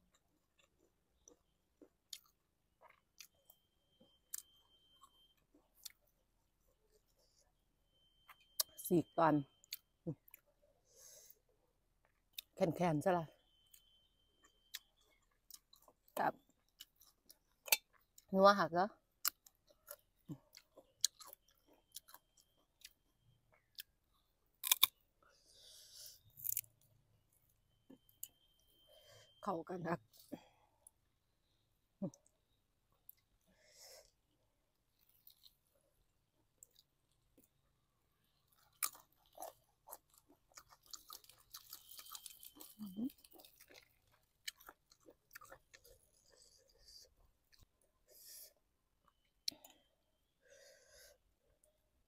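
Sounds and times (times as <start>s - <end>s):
biting and chewing mango: 19.2s - 25.1s, 38.2s - 47.8s.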